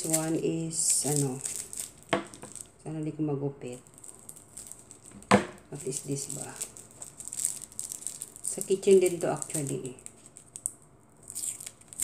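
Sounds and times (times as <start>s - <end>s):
plastic packaging rustling: 0.0s - 2.8s, 3.8s - 12.0s.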